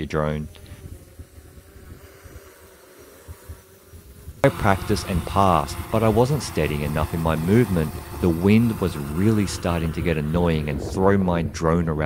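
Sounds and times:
faint drone propeller hum: 0.0s - 12.0s
wind buffeting microphone: 0.0s - 12.0s.

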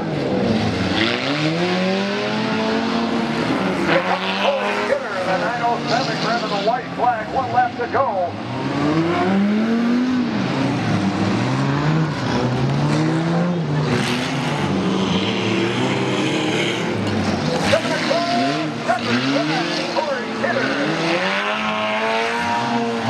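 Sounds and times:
car engines revving: 0.0s - 23.0s
cars crashing: 10.4s - 23.0s.

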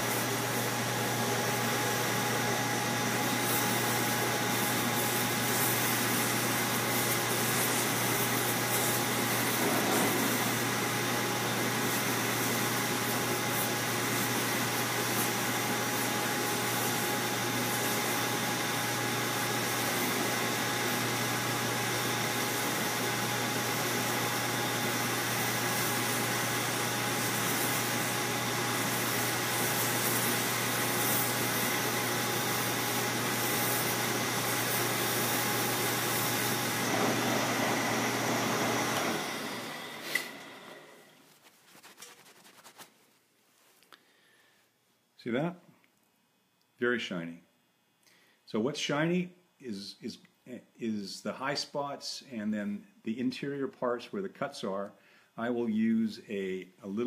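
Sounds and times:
polishing machine motor whir: 16.7s - 41.0s.

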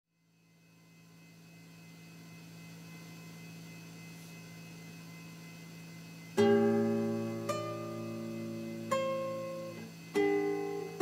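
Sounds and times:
low electrical hum: 0.1s - 11.0s.

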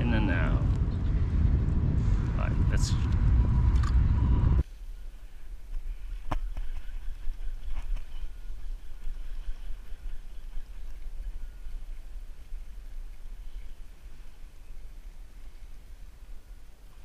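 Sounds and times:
low rumble: 0.0s - 4.7s
wind noise on microphone: 0.0s - 17.0s.

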